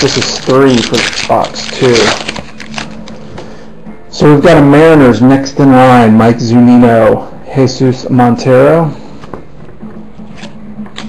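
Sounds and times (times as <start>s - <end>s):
foil wrapper tearing and crinkling: 0.0s - 3.1s.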